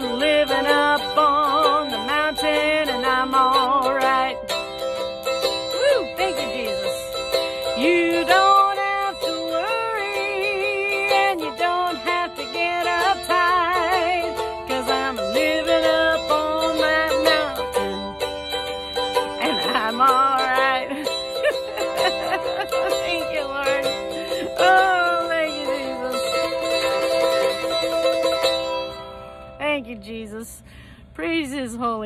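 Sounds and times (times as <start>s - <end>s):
acoustic string instrument strumming: 0.0s - 32.0s
woman singing with vibrato: 0.0s - 32.0s.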